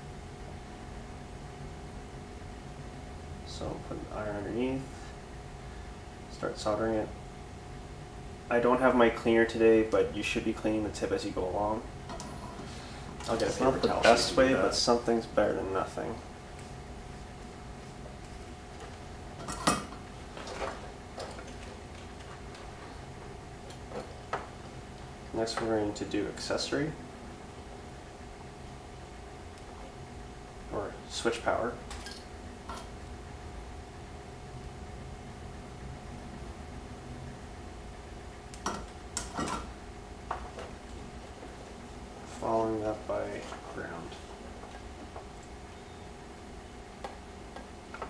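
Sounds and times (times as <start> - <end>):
low room hum: 0.0 - 48.0
wires being handled: 12.0 - 14.7, 16.4 - 25.8.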